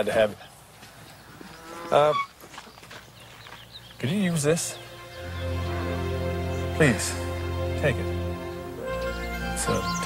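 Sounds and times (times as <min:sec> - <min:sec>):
farmyard ambience: 0:00.0 - 0:10.0.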